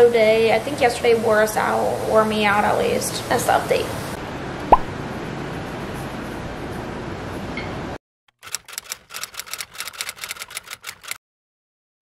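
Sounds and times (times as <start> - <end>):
typewriter key clicks: 8.4 - 11.2.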